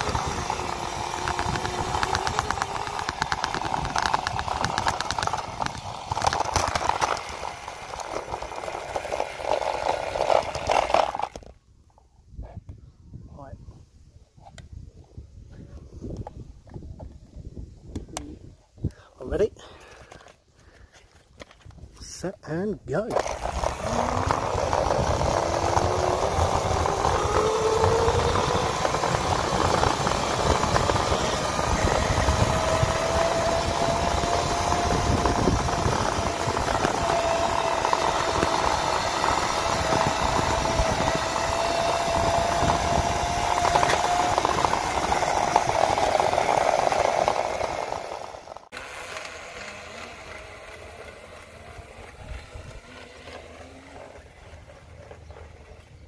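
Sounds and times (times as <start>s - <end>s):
electric motor whining: 0.0s - 11.5s, 23.1s - 56.0s
wheel and wind noise: 0.0s - 22.3s, 23.0s - 56.0s.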